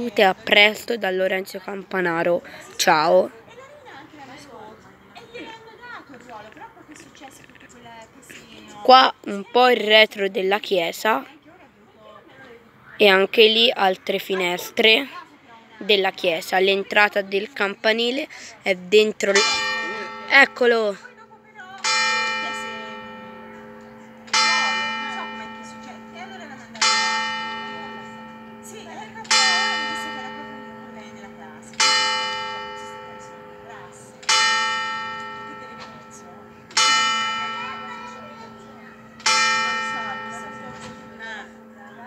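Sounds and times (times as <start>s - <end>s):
church bell striking: 19.2s - 42.0s.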